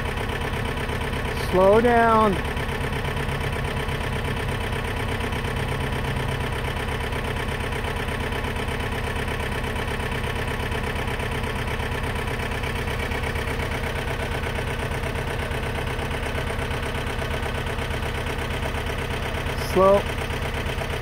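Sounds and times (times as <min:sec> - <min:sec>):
steady engine drone: 0:00.0 - 0:21.0.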